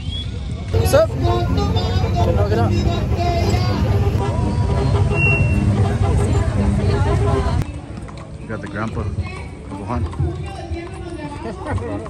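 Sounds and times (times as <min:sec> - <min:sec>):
people's voices: 0:00.0 - 0:12.0
short high tone: 0:01.3 - 0:05.7.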